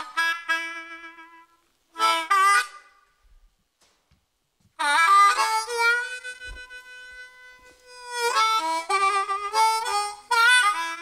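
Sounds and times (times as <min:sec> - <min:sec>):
blues harmonica: 0:00.0 - 0:03.4, 0:04.8 - 0:11.0.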